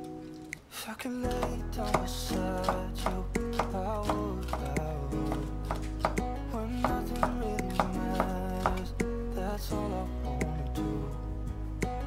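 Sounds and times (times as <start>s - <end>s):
background music: 0.0s - 12.0s
knife chopping on wooden board: 1.3s - 8.8s.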